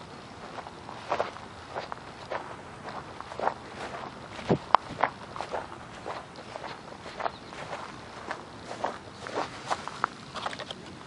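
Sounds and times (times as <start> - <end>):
footsteps on dry grass: 0.0 - 10.7.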